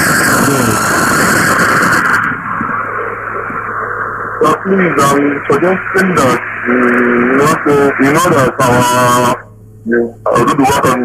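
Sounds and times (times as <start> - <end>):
low hum: 0.0 - 11.0
phone line hiss: 0.0 - 11.0.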